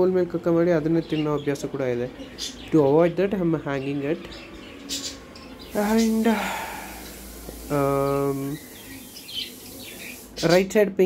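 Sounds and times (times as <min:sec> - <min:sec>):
lovebirds chirping: 0:00.0 - 0:10.9
man's drawn-out hesitation sound: 0:05.7 - 0:07.1.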